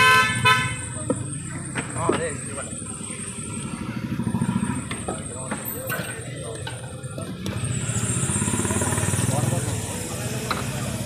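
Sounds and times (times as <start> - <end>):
motorcycle engine running: 0.9 - 11.0.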